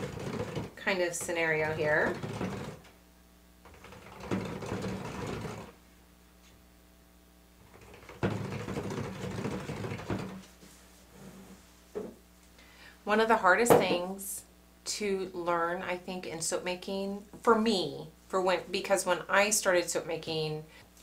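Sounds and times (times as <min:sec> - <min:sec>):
stick blender motor humming: 0:00.0 - 0:00.8, 0:03.7 - 0:05.8.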